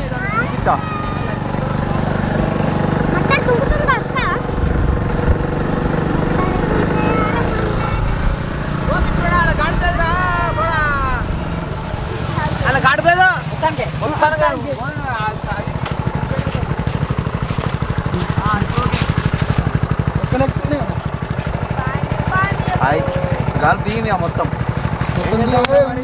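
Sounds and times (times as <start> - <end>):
motorcycle engine running: 0.0 - 26.0
voices calling out: 0.0 - 26.0.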